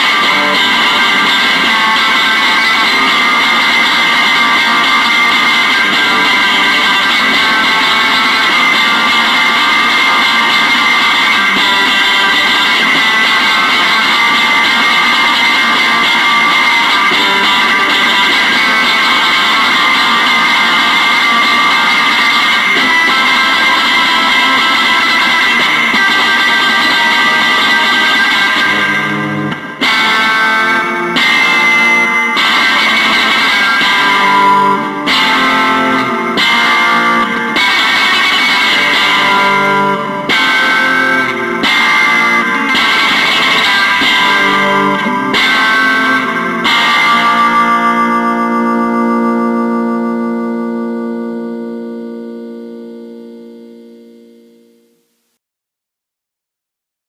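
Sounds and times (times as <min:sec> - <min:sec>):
struck guitar chords: 0:00.0 - 0:55.2
electric guitar through effects: 0:00.0 - 0:55.3.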